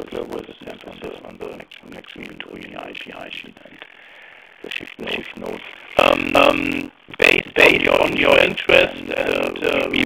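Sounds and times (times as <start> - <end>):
speech over telephone line: 0.0 - 3.9, 4.6 - 10.0.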